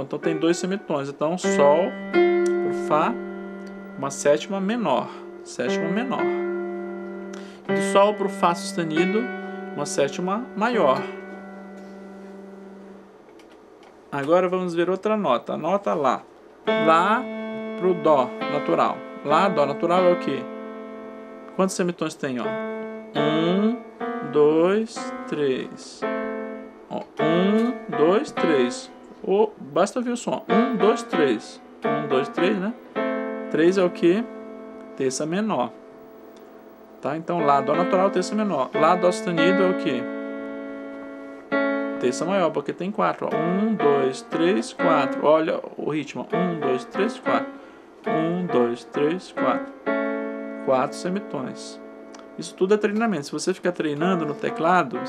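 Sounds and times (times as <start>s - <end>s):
electronic keyboard held notes: 0.0s - 55.0s.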